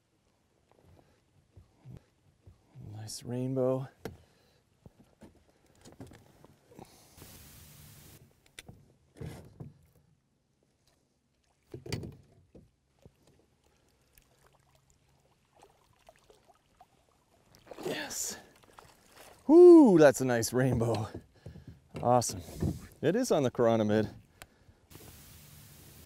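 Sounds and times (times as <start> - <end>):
rush of water: 17.5 - 20.1
soft knocks and thumps: 20.7 - 22.9.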